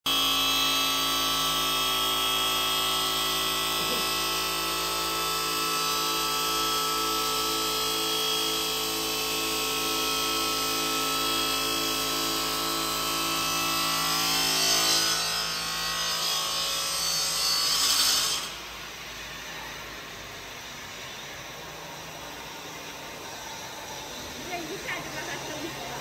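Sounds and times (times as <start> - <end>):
stone saw blade whining: 0.1 - 26.0.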